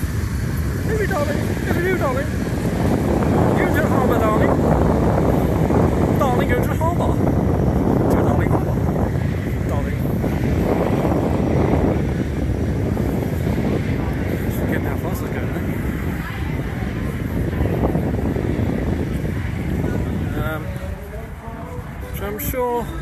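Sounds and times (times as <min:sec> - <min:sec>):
voices: 0:00.0 - 0:23.0
wind buffeting microphone: 0:00.0 - 0:23.0.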